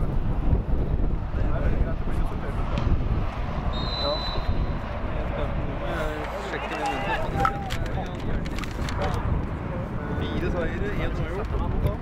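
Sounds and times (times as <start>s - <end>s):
wind buffeting microphone: 0.0s - 12.0s
referee's whistle blast: 3.7s - 4.6s.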